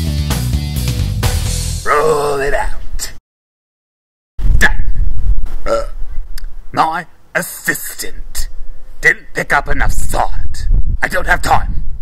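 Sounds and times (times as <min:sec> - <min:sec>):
person vocalizing: 0:01.8 - 0:03.2, 0:05.6 - 0:06.0.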